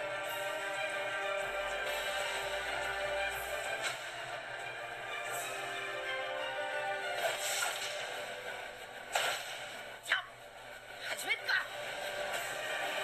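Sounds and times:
music with held tones: 0.0s - 9.2s, 11.4s - 13.0s.

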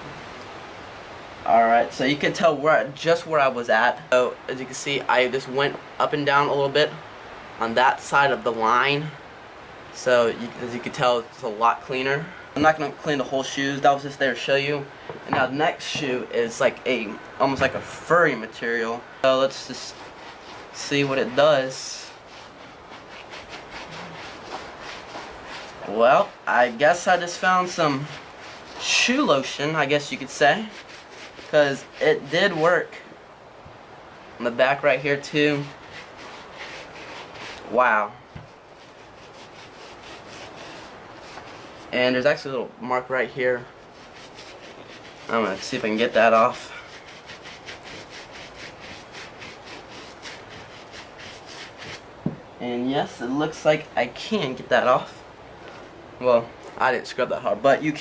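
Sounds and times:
brush scrubbing suede: 15.8s - 33.0s, 34.8s - 42.0s, 43.5s - 52.4s.

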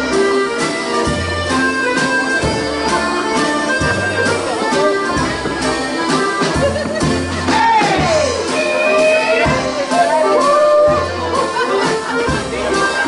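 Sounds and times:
accordions playing: 0.0s - 13.0s
drum kit: 0.0s - 13.0s
keyed fiddle playing: 0.0s - 13.0s.

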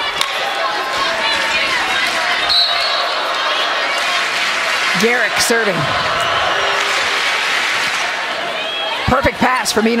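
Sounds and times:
indoor crowd hubbub: 0.0s - 10.0s
raised voices or whistles: 2.4s - 3.3s.

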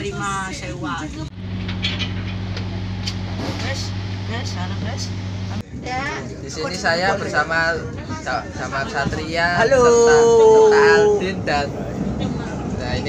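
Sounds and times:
passengers talking: 0.0s - 13.0s
train running hum: 0.0s - 13.0s.

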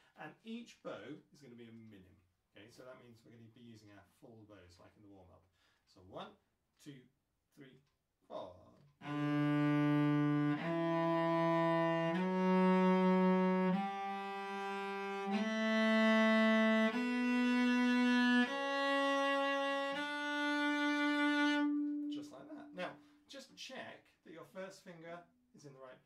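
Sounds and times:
cello playing ascending scale: 9.0s - 23.1s.

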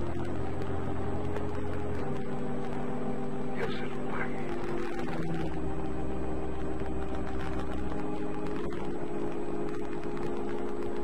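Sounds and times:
deep rumble: 0.0s - 11.0s
hum of held low tones: 0.0s - 11.0s.

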